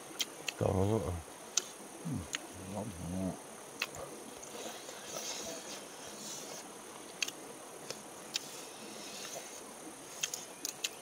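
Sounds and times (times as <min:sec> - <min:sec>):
insects buzzing: 0:00.0 - 0:11.0
man's low voice: 0:00.6 - 0:01.3, 0:02.0 - 0:03.4
sharp clicks: 0:10.2 - 0:11.0.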